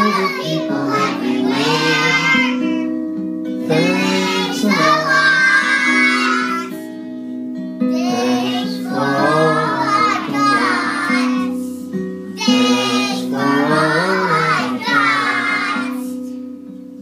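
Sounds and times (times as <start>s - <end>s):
children singing in unison: 0.0s - 2.9s, 3.6s - 6.8s, 7.9s - 16.3s
musical accompaniment: 0.0s - 17.0s.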